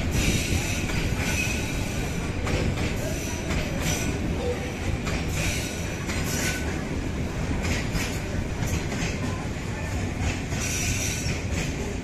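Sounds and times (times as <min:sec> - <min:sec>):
train wheels rumbling and clattering: 0:00.0 - 0:12.0.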